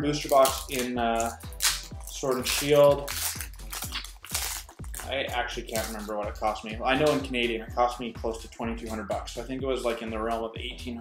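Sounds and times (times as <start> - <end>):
background music with steady beat: 0.0 - 11.0
foil wrapper crinkling: 0.2 - 6.1
foil pack tearing open: 0.3 - 5.1.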